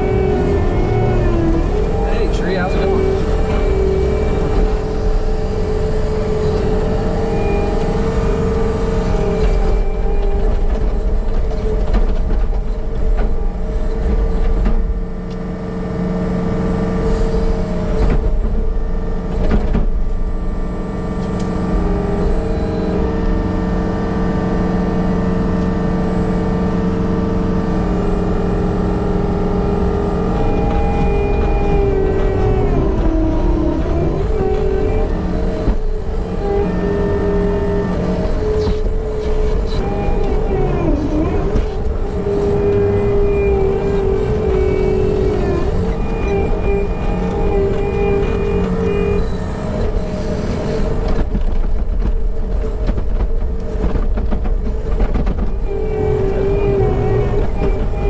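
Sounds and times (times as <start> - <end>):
engine whine: 0.0 - 58.0
skid loader engine running: 0.0 - 58.0.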